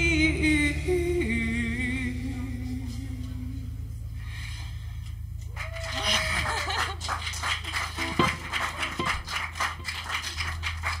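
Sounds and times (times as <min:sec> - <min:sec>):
audience applauding: 0:05.5 - 0:11.0.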